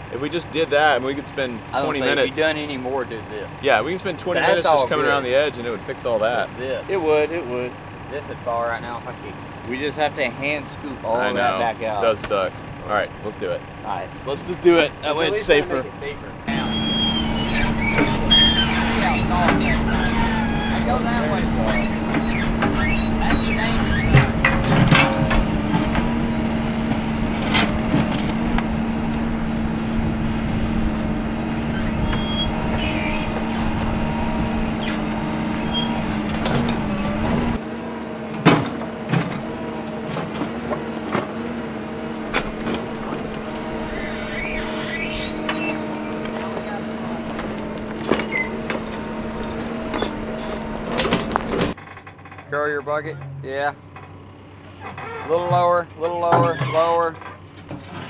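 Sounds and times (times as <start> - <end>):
diesel engine running: 0.0 - 56.3, 57.0 - 58.0.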